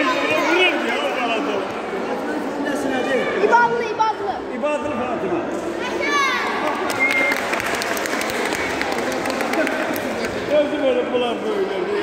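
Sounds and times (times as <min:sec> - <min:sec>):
spectators applauding: 0:06.6 - 0:10.5.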